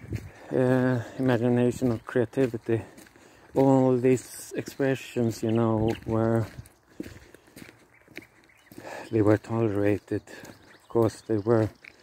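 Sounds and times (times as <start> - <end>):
faint footsteps: 0.0 - 12.0.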